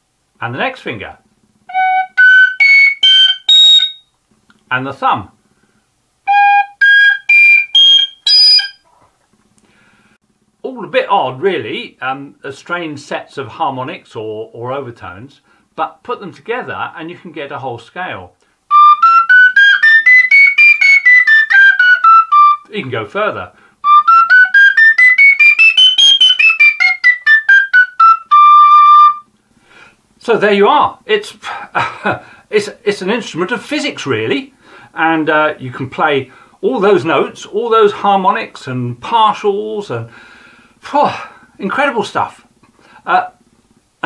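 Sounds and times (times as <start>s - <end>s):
metal pipe short notes: 1.7s - 4.1s.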